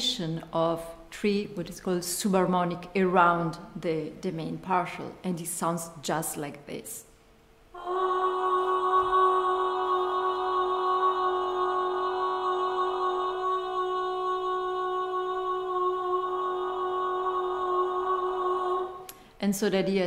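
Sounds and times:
distorted sung voice note: 0:07.8 - 0:19.2.

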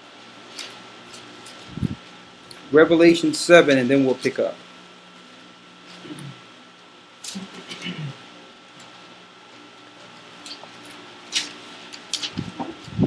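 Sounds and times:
faint electrical whine: 0:00.0 - 0:13.0
paper pages rustling: 0:10.4 - 0:12.9.

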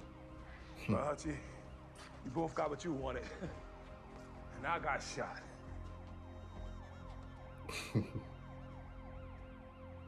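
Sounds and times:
emergency vehicle sirens: 0:01.8 - 0:10.0.

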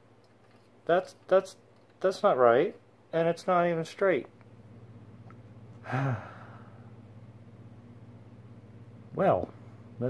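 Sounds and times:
faint low hum: 0:00.0 - 0:10.0
man sighing: 0:05.8 - 0:06.9.

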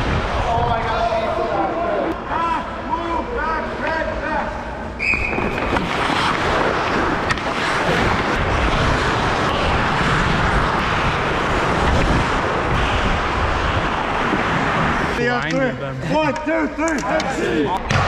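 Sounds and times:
skate blades scraping ice: 0:05.1 - 0:15.3
wind buffeting microphone: 0:06.5 - 0:15.2.

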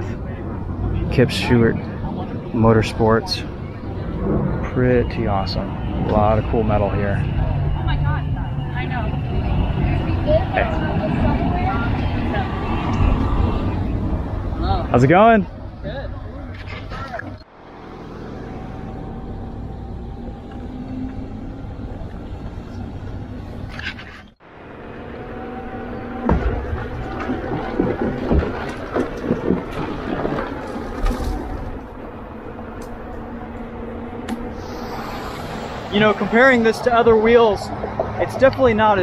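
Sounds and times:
wind on microphone: 0:25.8 - 0:39.0
faint electric motor whine: 0:33.2 - 0:37.4.

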